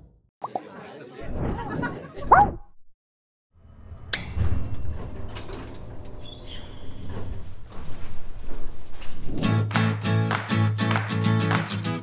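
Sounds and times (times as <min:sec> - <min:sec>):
voices with swooping pitch: 0:00.4 - 0:02.6
bright ding: 0:04.1 - 0:05.5.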